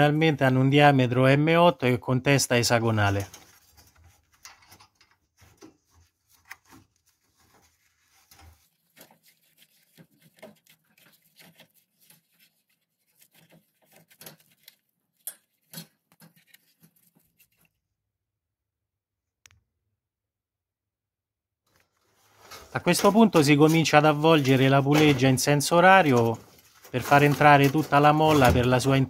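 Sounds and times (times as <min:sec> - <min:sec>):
metallic clicks and scraping: 0:03.1 - 0:06.8, 0:13.1 - 0:17.7.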